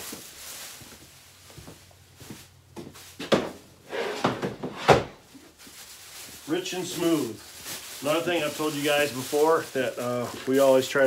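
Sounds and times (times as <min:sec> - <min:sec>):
handling noises: 0:00.0 - 0:11.0
plastic bag rustling: 0:00.0 - 0:11.0.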